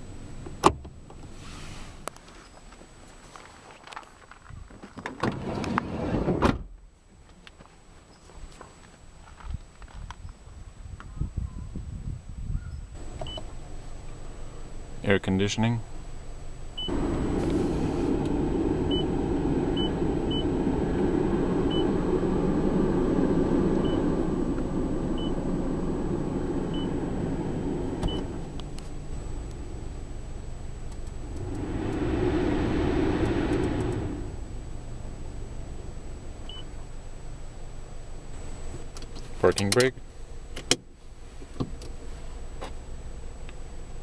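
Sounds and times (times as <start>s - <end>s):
car blower fan pushing air: 16.8s - 36.8s.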